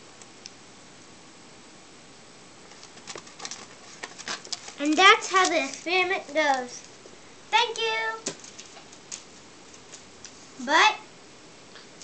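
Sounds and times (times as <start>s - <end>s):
faint room hiss: 0.0s - 12.0s
clicks and rustles on foil: 2.7s - 7.0s, 8.2s - 10.4s.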